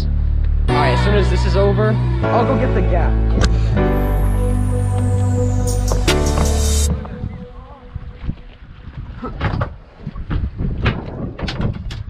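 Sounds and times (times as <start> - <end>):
wind rumble on microphone: 6.9 - 12.0.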